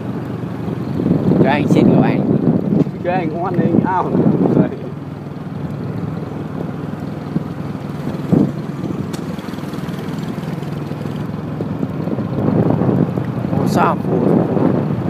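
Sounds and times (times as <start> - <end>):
dirt road noise: 0.0 - 15.0
motorbike engine running: 0.0 - 15.0.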